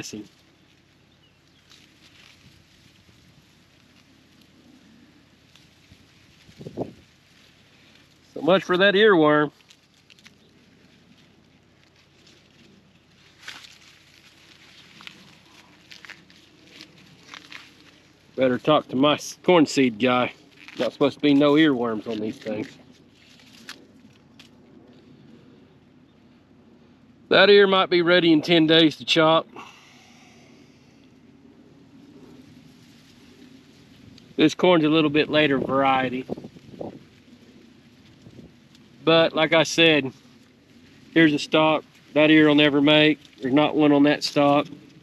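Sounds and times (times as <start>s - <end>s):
dry corn husks crinkling: 0.0s - 45.0s
faint outdoor background noise: 0.0s - 45.0s
weak low hum: 0.0s - 45.0s.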